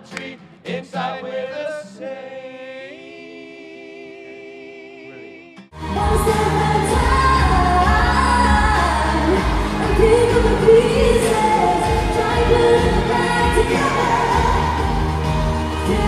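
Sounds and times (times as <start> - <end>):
pop song with female singer: 5.8 - 16.0.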